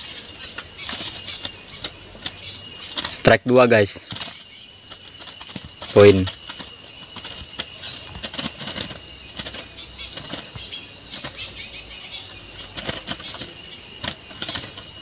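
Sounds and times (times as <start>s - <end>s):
forest insects droning: 0.0s - 15.0s.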